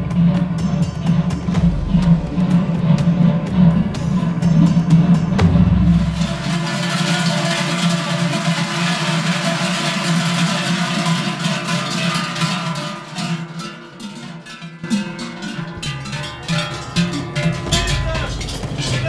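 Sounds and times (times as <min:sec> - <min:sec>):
large cowbells clanging: 0:00.0 - 0:19.0.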